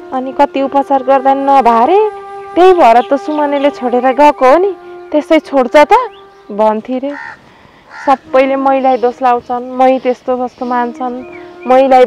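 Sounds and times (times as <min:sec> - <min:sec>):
woman speaking: 0:00.1 - 0:07.2, 0:08.0 - 0:12.0
harsh bird call: 0:07.1 - 0:09.2.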